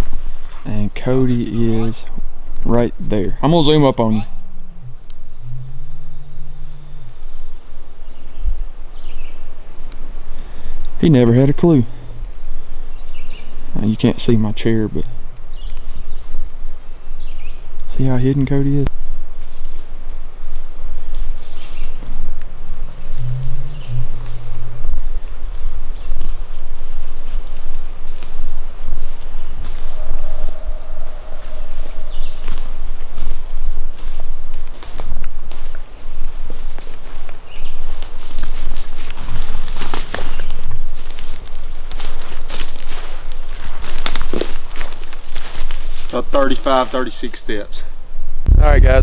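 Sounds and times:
low rumble: 2.2 - 10.2, 22.0 - 27.2, 48.4 - 49.0
footsteps through leaf litter: 33.0 - 46.8.

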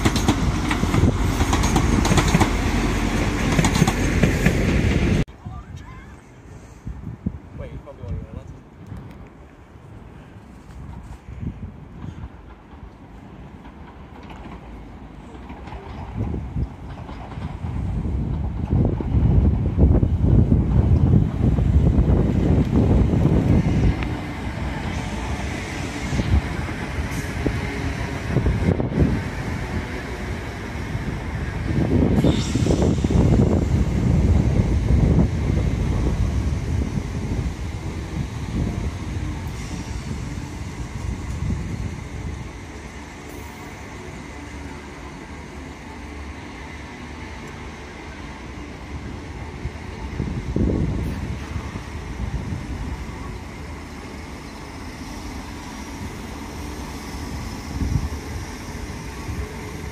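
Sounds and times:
train rumbling over rails: 0.0 - 59.9.

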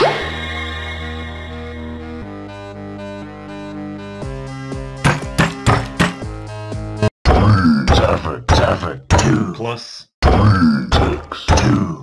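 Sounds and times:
cartoon music with low string notes: 2.1 - 9.6
percussive sound-effect hits: 5.0 - 6.3.

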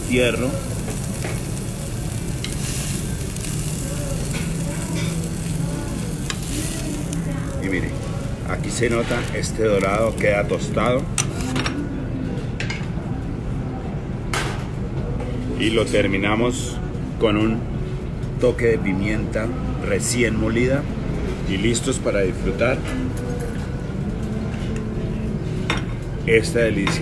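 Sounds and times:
kitchen background rumble: 0.0 - 17.1.

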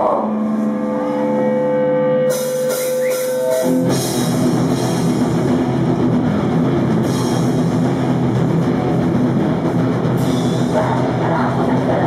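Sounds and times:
electric guitars droning: 0.0 - 12.0.

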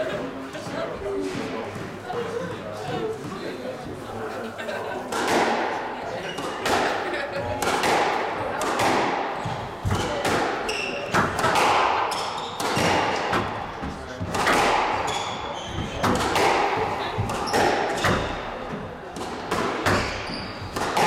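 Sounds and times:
squash ball cracking off walls: 7.6 - 21.0
shoes squeaking on wooden floor: 12.1 - 12.8, 15.0 - 16.2, 19.9 - 20.8.

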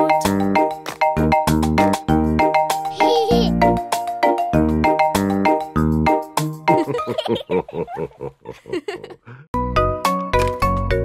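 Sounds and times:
girl giggling: 3.0 - 3.6, 6.7 - 9.4.

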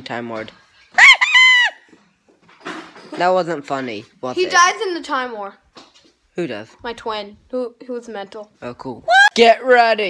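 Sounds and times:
boy shrieking in falsetto: 1.0 - 1.9, 9.1 - 9.4.

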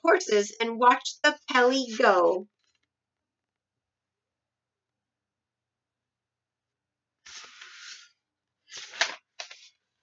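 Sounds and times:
book scuffing: 7.2 - 9.8
book pages rustling: 7.2 - 10.0.

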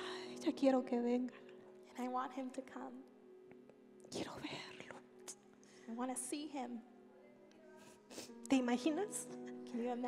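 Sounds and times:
woman whispering: 4.1 - 5.4.

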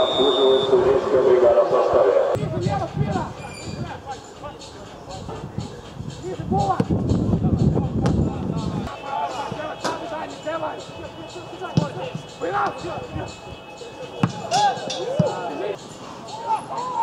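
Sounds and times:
players shouting: 8.8 - 17.0
ball being kicked thuds: 14.2 - 14.4.

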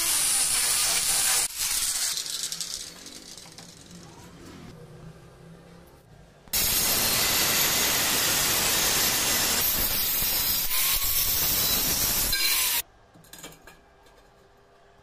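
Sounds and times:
angle grinder cutting metal pipe: 0.0 - 2.3, 6.6 - 12.8.

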